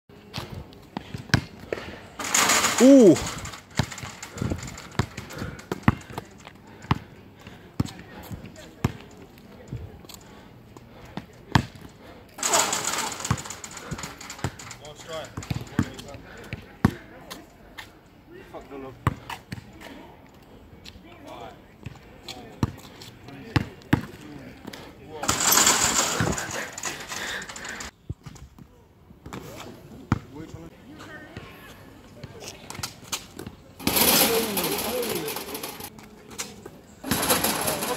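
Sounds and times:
basketball bouncing on asphalt: 1.0s - 1.6s, 3.7s - 9.1s, 11.1s - 11.9s, 15.4s - 17.0s, 23.5s - 24.2s, 30.1s - 30.3s
indistinct voices: 2.2s - 6.4s.

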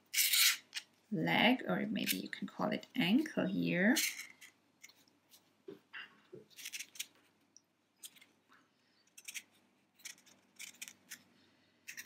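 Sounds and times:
wire scratching against wire: 0.0s - 0.9s, 9.1s - 11.3s.

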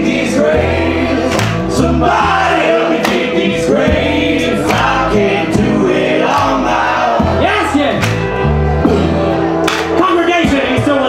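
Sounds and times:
voices singing together: 0.0s - 7.8s
string band playing: 0.0s - 11.0s
upright bass: 0.0s - 11.0s.

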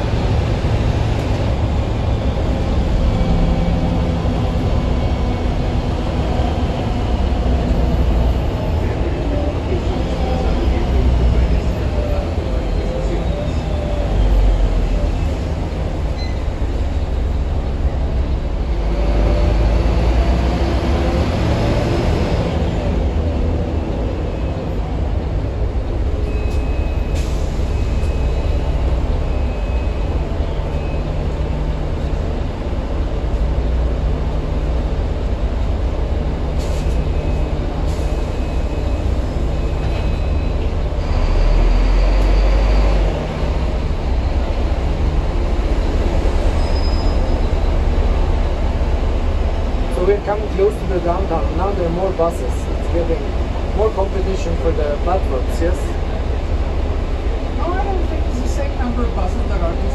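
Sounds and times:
bus engine rumbling and whining: 0.0s - 59.9s.

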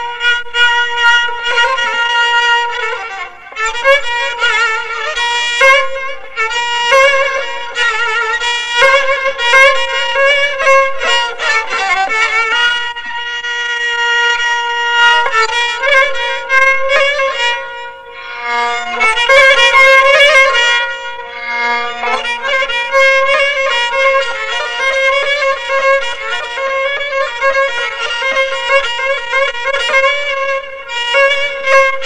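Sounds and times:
bowed spike fiddle playing: 0.0s - 32.0s.

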